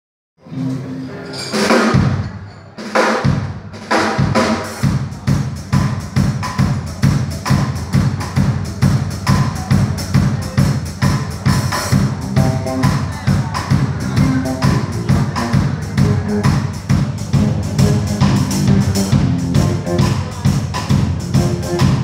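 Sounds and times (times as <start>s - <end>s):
live band instrumental: 0.4s - 22.0s
bass drum and snare: 3.0s - 22.0s.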